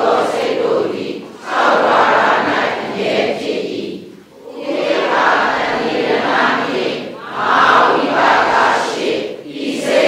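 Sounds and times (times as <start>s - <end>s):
many voices reciting in unison: 0.0s - 10.0s.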